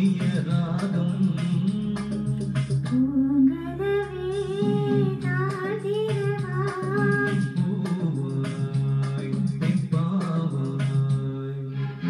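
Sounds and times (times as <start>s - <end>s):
instrumental backing track: 0.0s - 12.0s
woman singing: 2.8s - 7.6s.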